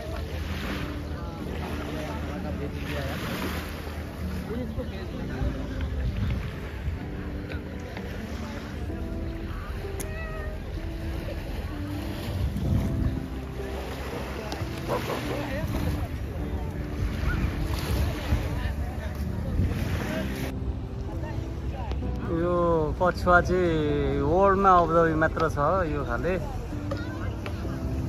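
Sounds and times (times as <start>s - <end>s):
small waves lapping: 0.0s - 28.0s
wind buffeting microphone: 4.9s - 22.2s.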